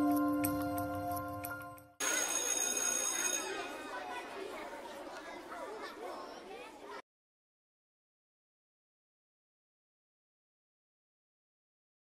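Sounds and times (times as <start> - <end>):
high ringing tone: 2.0 - 3.7
murmur of many voices: 2.0 - 7.0.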